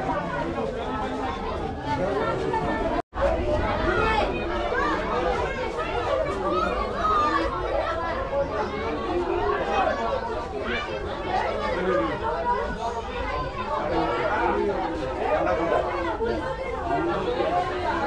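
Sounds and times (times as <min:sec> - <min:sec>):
people chattering: 0:00.0 - 0:18.0.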